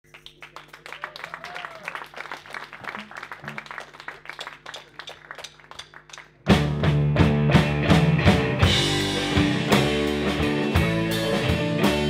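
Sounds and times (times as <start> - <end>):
audience applause: 0.0 - 6.4.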